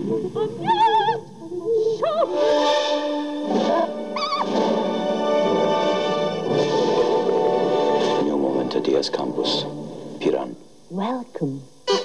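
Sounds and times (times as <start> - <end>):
film soundtrack music: 2.2 - 10.4.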